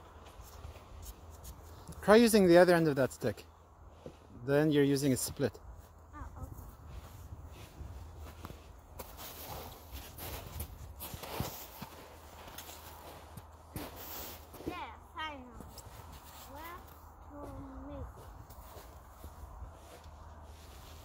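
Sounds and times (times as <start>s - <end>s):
footsteps in snow: 6.6s - 21.0s.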